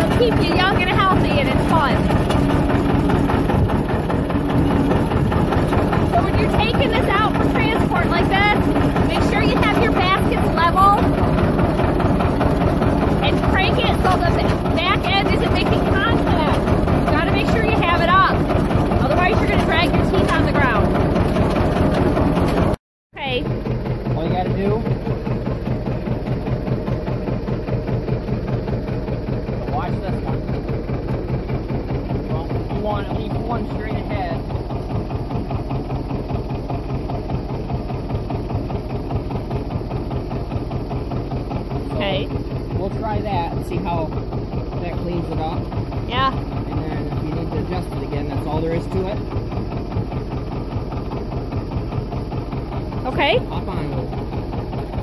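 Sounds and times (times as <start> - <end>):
tractor engine idling: 0.0 - 55.0.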